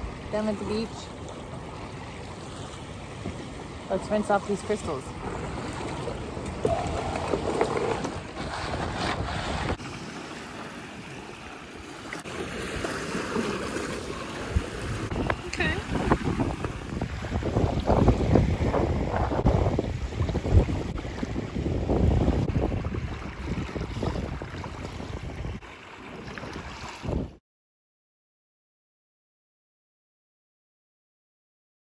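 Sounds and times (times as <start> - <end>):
small waves lapping on shore: 0.0 - 27.4
wind buffeting microphone: 14.2 - 27.4.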